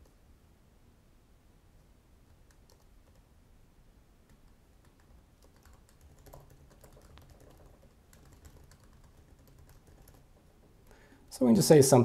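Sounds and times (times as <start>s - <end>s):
typing on a computer keyboard: 2.3s - 3.3s, 4.3s - 10.7s.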